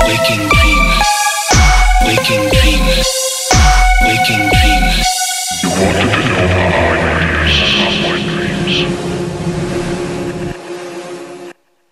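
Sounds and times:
bass: 0:00.0 - 0:10.6
distorted noise drone: 0:00.0 - 0:11.9.

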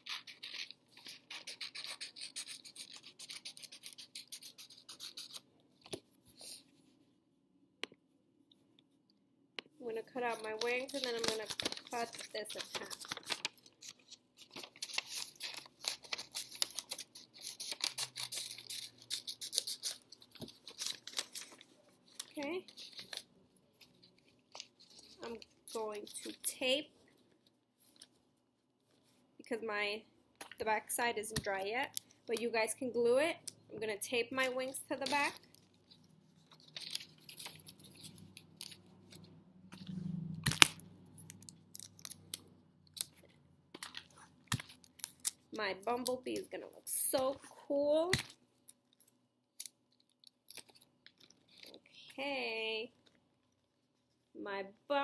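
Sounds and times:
paper rustling and snipping: 0:10.2 - 0:26.4, 0:35.0 - 0:39.9.

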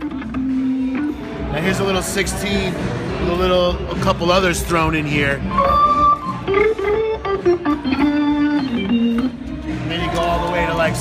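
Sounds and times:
organ playing chords: 0:05.4 - 0:09.9.

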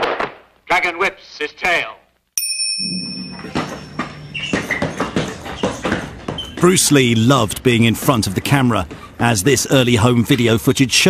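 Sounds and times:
high-pitched whine: 0:02.8 - 0:05.0
low hum: 0:02.8 - 0:05.6.

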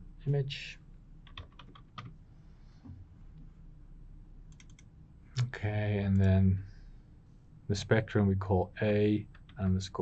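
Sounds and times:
computer keyboard typing: 0:01.2 - 0:02.1, 0:04.5 - 0:04.9.

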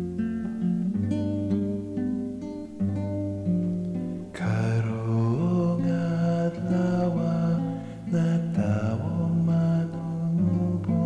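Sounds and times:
acoustic guitar: 0:00.0 - 0:11.0
solo voice singing a hymn: 0:04.3 - 0:11.0.

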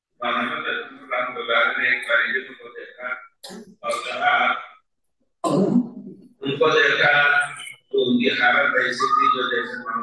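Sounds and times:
man speaking into a microphone: 0:00.2 - 0:04.8, 0:06.0 - 0:10.0
throat clearing: 0:05.4 - 0:06.2.

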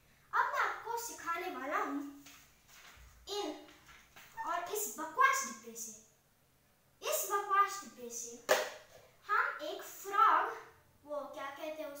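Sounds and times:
boy talking: 0:00.3 - 0:02.2, 0:03.2 - 0:03.8, 0:04.4 - 0:06.1, 0:07.0 - 0:08.6, 0:09.2 - 0:12.0.

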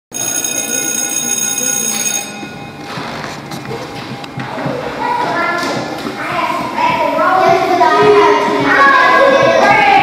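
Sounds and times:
electric bell ringing: 0:00.1 - 0:03.2.

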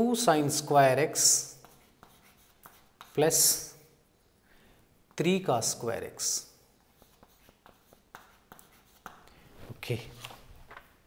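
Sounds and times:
chalk tapping and scraping on chalkboard: 0:01.1 - 0:03.8, 0:06.2 - 0:09.5.

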